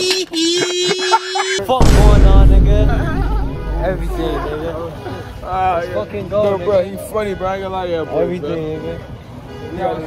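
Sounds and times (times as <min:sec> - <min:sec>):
deep bass boom: 0:01.8 - 0:05.0.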